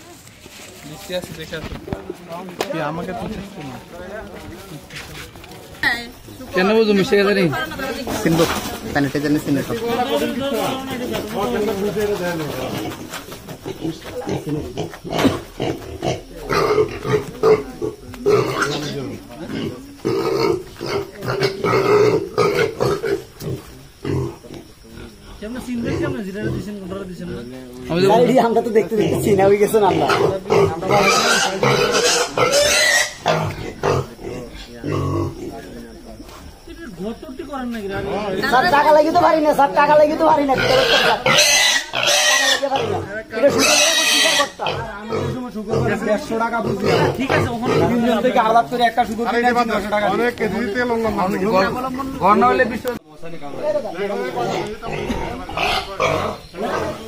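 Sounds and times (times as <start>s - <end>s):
people talking: 0.0s - 57.0s
pigs grunting: 11.5s - 27.5s, 28.1s - 35.7s, 40.4s - 48.2s, 54.0s - 57.0s.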